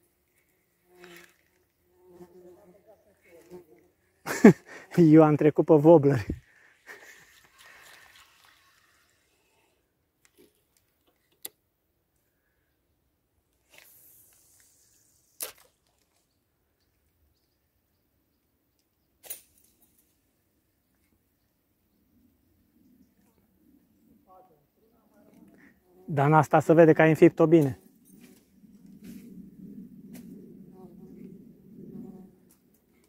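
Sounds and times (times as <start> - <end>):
soft hiss: 13.5 - 16.1.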